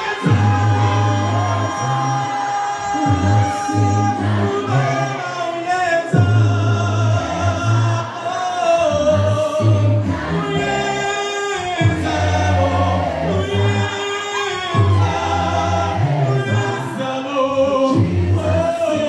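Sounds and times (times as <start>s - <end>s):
choir singing gospel: 0.0s - 19.0s.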